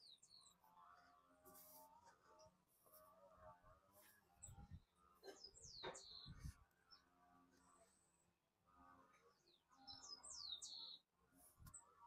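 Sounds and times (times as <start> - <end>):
songbird chirping: 0.0 - 1.4, 3.6 - 12.0.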